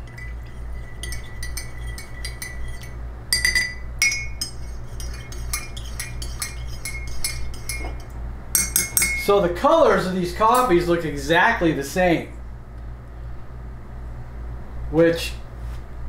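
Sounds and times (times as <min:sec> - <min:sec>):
spoon clinking in a mug: 0:00.0 - 0:09.3.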